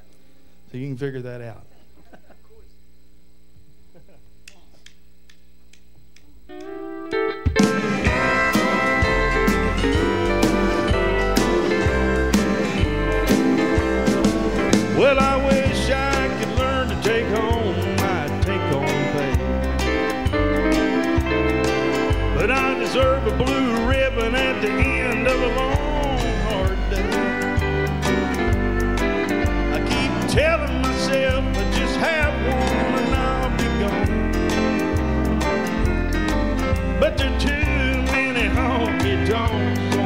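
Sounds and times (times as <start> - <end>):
drums keeping a beat: 5.4 - 40.0
bending lead melody: 6.4 - 40.0
country band playing: 6.5 - 40.0
held guitar chord: 6.5 - 40.0
low hum: 7.6 - 27.3.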